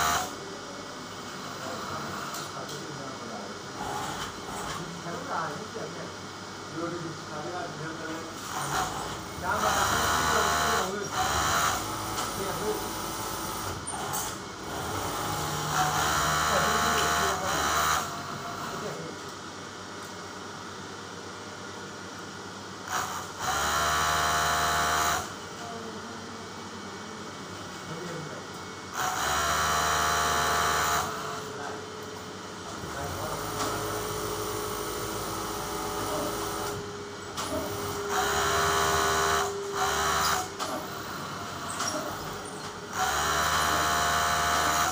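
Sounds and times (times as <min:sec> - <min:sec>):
sewing machine running: 0:00.0 - 0:00.3, 0:08.4 - 0:19.0, 0:22.9 - 0:25.4, 0:28.9 - 0:31.5, 0:32.7 - 0:36.8, 0:37.4 - 0:44.9.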